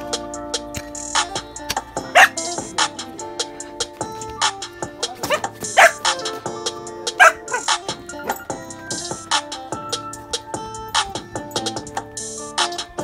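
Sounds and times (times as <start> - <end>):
background music: 0.0 - 13.0
dog barking: 2.0 - 2.5, 5.2 - 6.4, 7.1 - 8.4.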